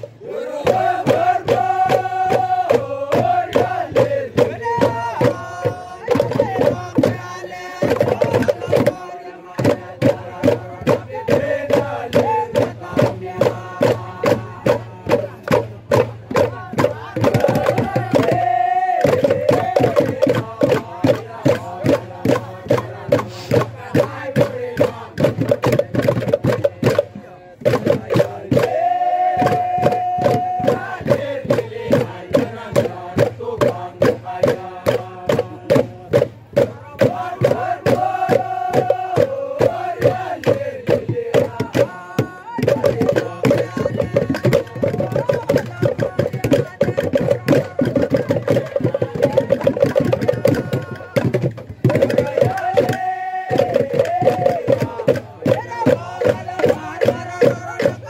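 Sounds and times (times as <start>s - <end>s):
fast percussion beat: 0.0s - 58.0s
group chanting in unison: 0.0s - 58.0s.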